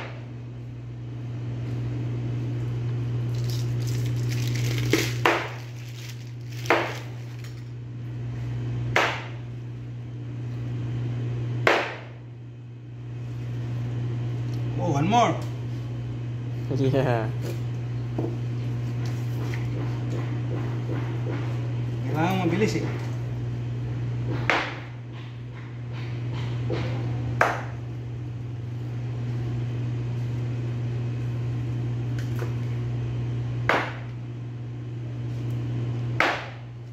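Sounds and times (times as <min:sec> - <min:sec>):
steady low hum: 0:00.0 - 0:36.9
cleaver chopping on cutting board: 0:09.0 - 0:09.4, 0:11.6 - 0:12.1, 0:33.7 - 0:34.1, 0:36.2 - 0:36.6.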